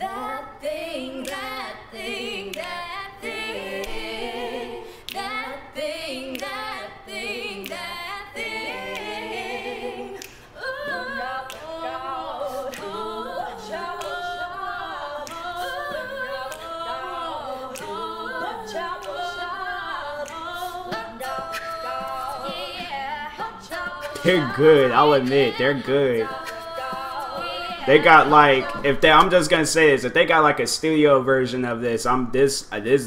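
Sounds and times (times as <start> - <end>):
women singing a cappella: 0.0 - 30.0
sharp rhythmic clicks: 1.1 - 29.4.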